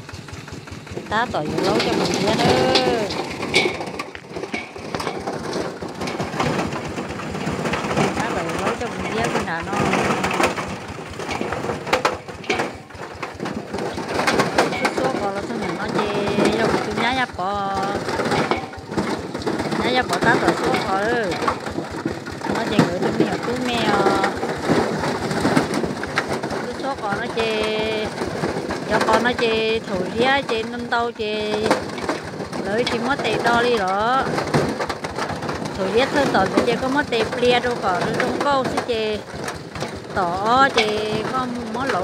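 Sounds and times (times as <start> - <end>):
cassava grinding clatter: 0.0 - 42.0.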